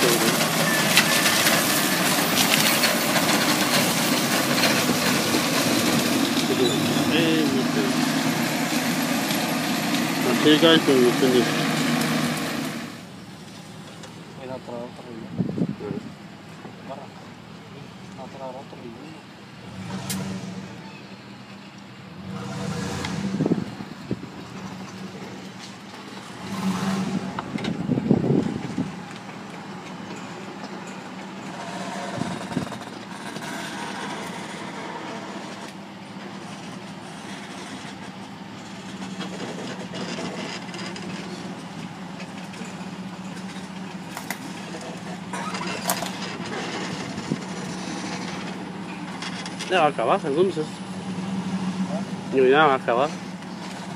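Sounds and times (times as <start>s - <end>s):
tractor engine drone: 0.0s - 53.9s
wind gusts on microphone: 15.2s - 16.2s, 23.1s - 24.4s, 27.0s - 29.1s.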